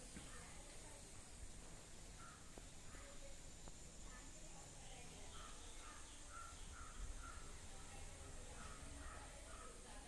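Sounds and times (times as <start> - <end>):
faint bird calls: 2.0 - 3.4, 4.1 - 10.0.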